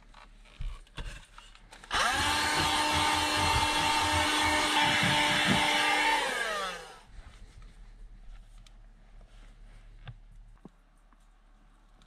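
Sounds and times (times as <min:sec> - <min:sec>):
small electric motor whining: 0:01.9 - 0:07.1.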